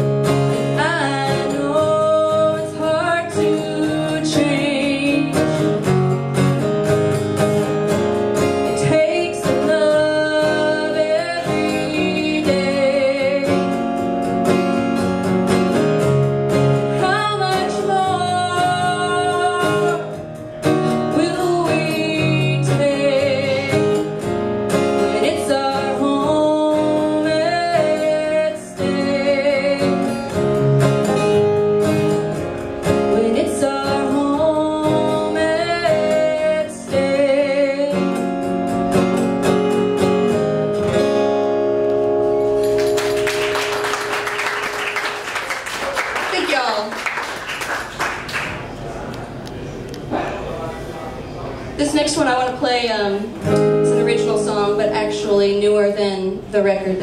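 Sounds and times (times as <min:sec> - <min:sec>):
acoustic guitar strumming: 0:00.0 - 0:46.9, 0:51.8 - 0:57.0
woman singing: 0:00.6 - 0:05.7, 0:08.6 - 0:13.9, 0:17.0 - 0:20.2, 0:21.0 - 0:24.1, 0:24.9 - 0:30.2, 0:33.0 - 0:38.2, 0:53.8 - 0:57.0.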